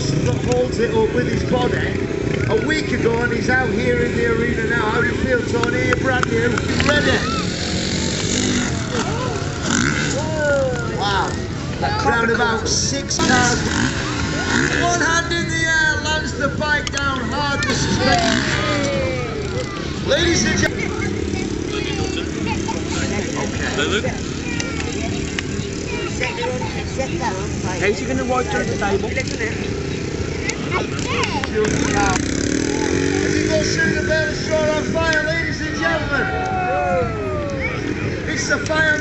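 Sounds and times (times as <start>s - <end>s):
motorcycle engines running: 0.0s - 39.0s
murmur of voices: 0.0s - 39.0s.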